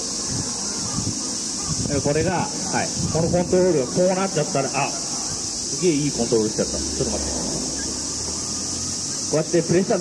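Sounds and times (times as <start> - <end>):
insect chorus buzzing: 0.0 - 10.0
man talking through microphone: 1.8 - 7.5, 9.3 - 10.0.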